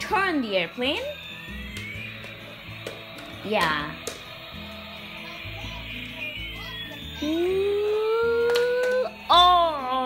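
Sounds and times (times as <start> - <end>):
toy electronic tune with beat: 0.1 - 10.0
person voicing rising ooh: 7.2 - 9.1.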